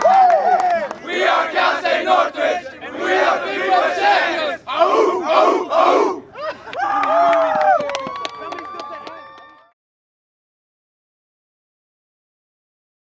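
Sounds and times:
players shouting and cheering: 0:00.0 - 0:09.7.

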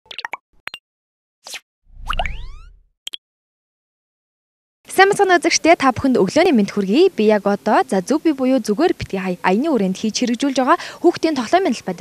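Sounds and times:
cartoon pops: 0:01.4 - 0:03.2.

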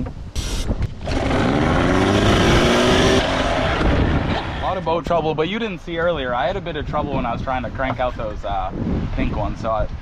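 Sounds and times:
outboard motor starting and running: 0:00.9 - 0:04.8.

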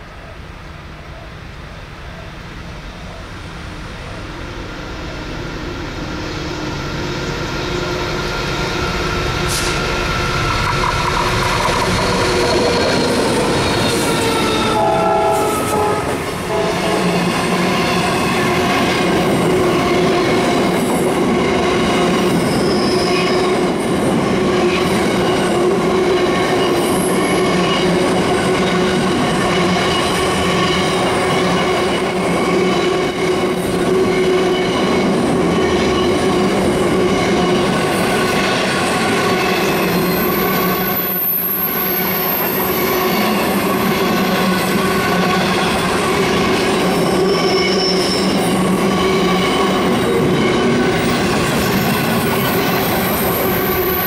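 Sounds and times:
diesel locomotives passing: 0:00.0 - 0:54.0
freight train rumbling past: 0:00.0 - 0:54.0
train wheels squealing: 0:04.8 - 0:54.0.

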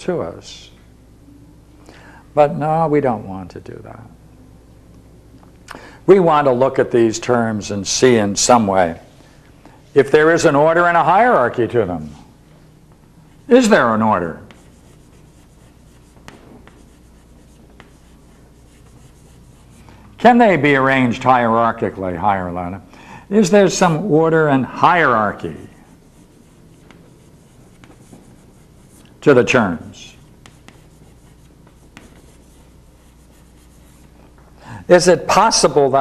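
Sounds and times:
steady low hum: 0:00.0 - 0:36.0
chalk scratching on chalkboard: 0:13.3 - 0:19.9, 0:25.0 - 0:34.2
chalk tapping on board: 0:14.4 - 0:19.8, 0:26.0 - 0:29.1, 0:30.2 - 0:34.2.

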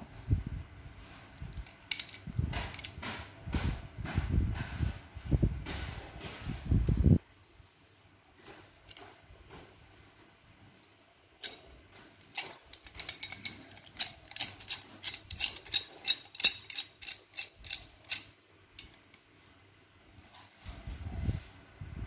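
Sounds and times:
pipe wrench metal clicks and rattles: 0:01.4 - 0:03.0, 0:11.4 - 0:19.3.

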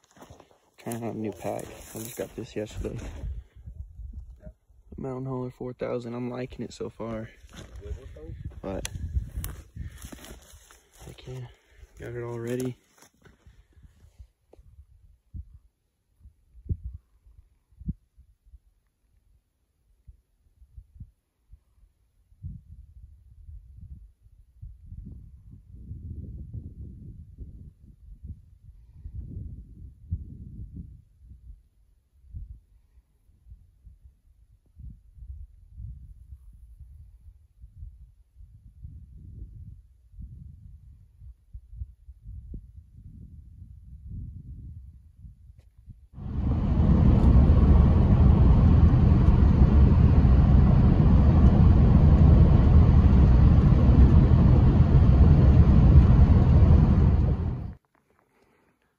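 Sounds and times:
footsteps on stony dirt: 0:00.0 - 0:03.3, 0:07.4 - 0:11.4, 0:12.2 - 0:13.6
wind buffeting microphone: 0:01.0 - 0:05.0, 0:06.8 - 0:12.4, 0:13.4 - 0:18.3, 0:20.6 - 0:32.8, 0:34.7 - 0:57.8.

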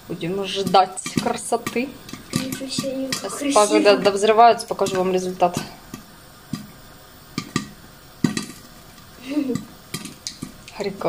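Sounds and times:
faint sizzle: 0:00.0 - 0:11.0
popcorn popping in a pan: 0:00.0 - 0:11.0.

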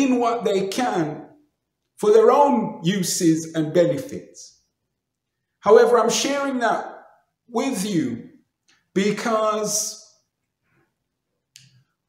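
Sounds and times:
man speaking: 0:00.0 - 0:01.4, 0:02.0 - 0:04.6, 0:05.6 - 0:10.2
mouth click: 0:11.5 - 0:11.9.

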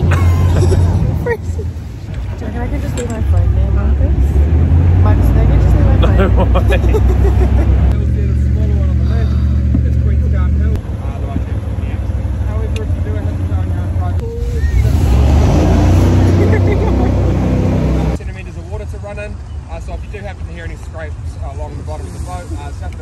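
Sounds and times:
boat engine drone: 0:00.0 - 0:18.2.

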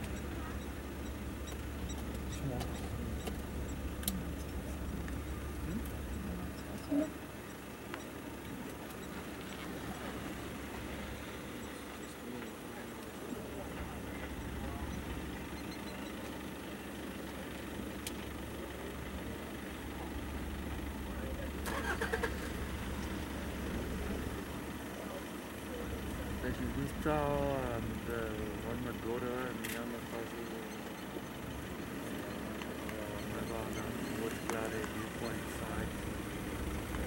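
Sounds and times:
vehicle engine humming: 0:00.0 - 0:37.0.

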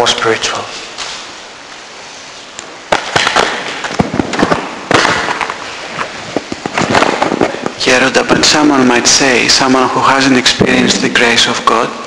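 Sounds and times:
loud crackling and popping: 0:02.5 - 0:12.0.

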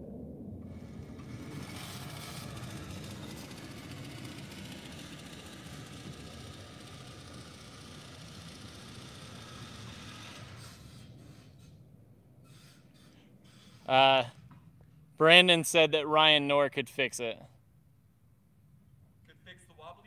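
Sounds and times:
faint motor whine: 0:00.0 - 0:15.5
reel mower cutting grass: 0:00.6 - 0:11.8, 0:12.4 - 0:14.3.

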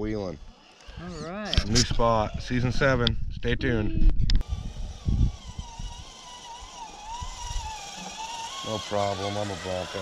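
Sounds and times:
electric motor whining: 0:00.4 - 0:03.0, 0:04.3 - 0:10.0.

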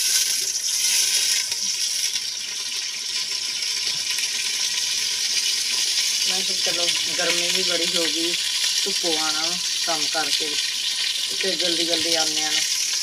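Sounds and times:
food sizzling in a pot: 0:00.0 - 0:13.0.

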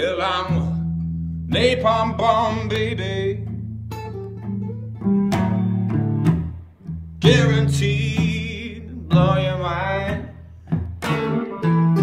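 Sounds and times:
acoustic guitar: 0:00.0 - 0:12.0
electric guitar blues fill: 0:00.0 - 0:12.0
person singing: 0:01.5 - 0:03.5, 0:07.2 - 0:10.5.

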